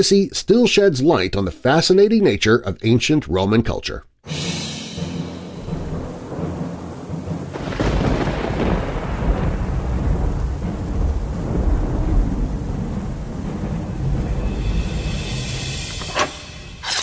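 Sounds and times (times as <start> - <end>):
steady rain: 5.0 - 15.9
thunder rumbling: 5.1 - 16.8.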